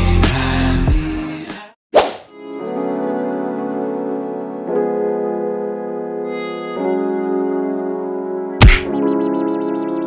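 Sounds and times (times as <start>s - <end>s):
background music: 0.0s - 10.0s
whip-like swish: 2.0s - 2.3s
soft piano music: 2.4s - 10.0s.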